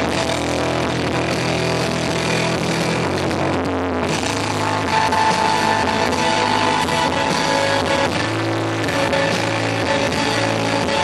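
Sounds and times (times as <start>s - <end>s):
electric guitars droning chord: 0.0s - 11.0s
live rock band playing: 0.0s - 11.0s.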